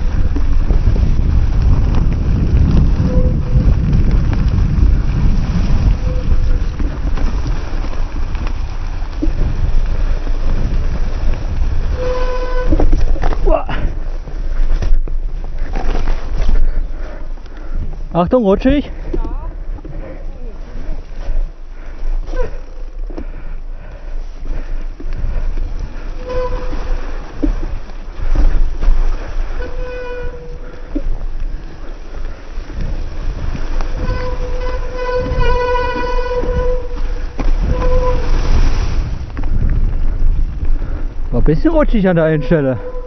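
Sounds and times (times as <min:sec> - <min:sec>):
bike tyres rumbling on trail: 0:00.0 - 0:43.0
wind on microphone: 0:00.0 - 0:43.0.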